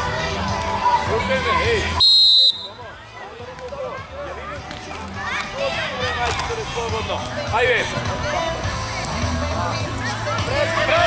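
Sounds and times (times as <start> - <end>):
chatter of children and spectators: 0.0 - 11.0
referee's whistle blast: 2.0 - 2.8.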